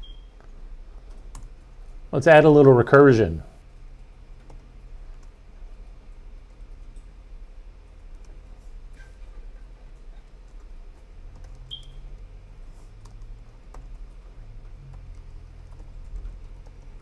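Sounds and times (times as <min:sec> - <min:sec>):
low steady hum: 0:00.0 - 0:17.0
computer keyboard typing: 0:01.0 - 0:01.7, 0:04.4 - 0:07.0, 0:08.0 - 0:08.6, 0:10.2 - 0:12.2, 0:13.0 - 0:17.0.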